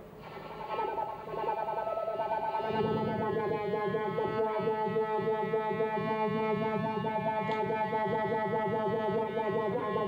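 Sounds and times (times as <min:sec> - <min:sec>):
violin with electronic effects: 0:00.6 - 0:10.0.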